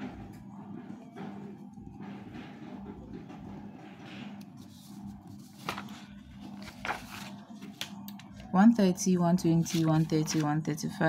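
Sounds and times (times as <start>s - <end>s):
paper sheets being moved: 4.2s - 7.9s, 9.6s - 10.5s
paper rustles: 4.5s - 8.0s, 9.6s - 10.5s.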